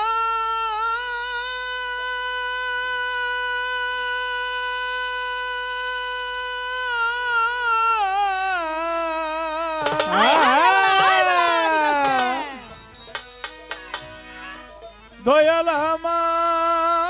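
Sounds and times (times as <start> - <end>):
man singing a long high note: 0.0 - 12.8, 15.2 - 17.0.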